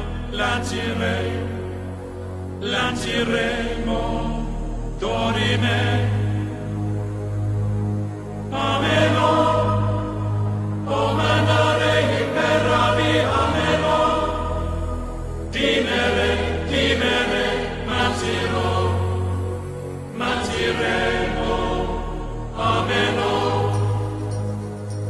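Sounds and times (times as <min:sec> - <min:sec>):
choir chanting: 0:00.0 - 0:06.8, 0:08.4 - 0:24.7
sustained low bass notes: 0:00.0 - 0:25.0.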